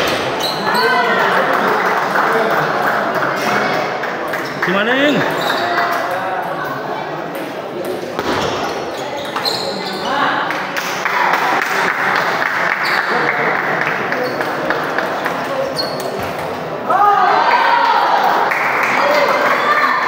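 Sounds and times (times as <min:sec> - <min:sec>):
hubbub of many voices: 0:00.0 - 0:20.0.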